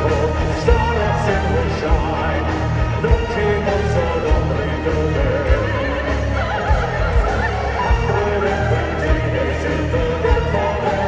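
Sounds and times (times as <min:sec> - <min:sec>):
distorted guitars: 0:00.0 - 0:11.0
drum beat: 0:00.0 - 0:11.0.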